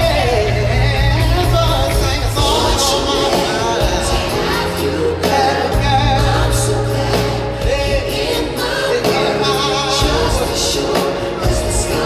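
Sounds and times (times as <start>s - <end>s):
live band playing: 0.0s - 12.0s
man singing: 0.0s - 12.0s.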